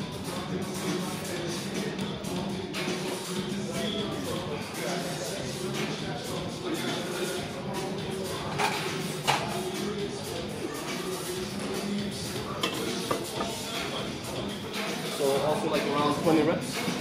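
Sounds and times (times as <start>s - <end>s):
background music: 0.0s - 17.0s
murmur of indistinct voices: 0.0s - 17.0s.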